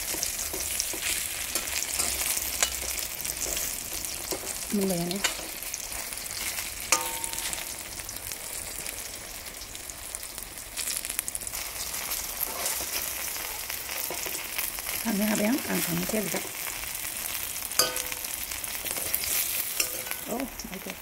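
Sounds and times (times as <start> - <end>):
metal spoon scraping wok: 0.0 - 7.8, 11.6 - 16.7, 17.7 - 20.4
fish sizzling in oil: 0.0 - 21.0
spoon clinking on wok: 0.1 - 3.6, 6.9 - 7.6, 17.8 - 18.3, 19.8 - 20.3.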